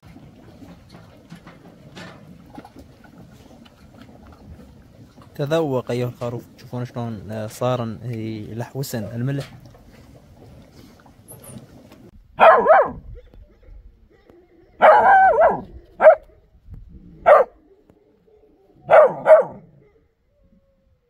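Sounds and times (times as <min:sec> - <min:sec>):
puppy barking: 0:12.4 - 0:13.0, 0:14.8 - 0:16.4, 0:17.2 - 0:17.6, 0:18.8 - 0:20.0.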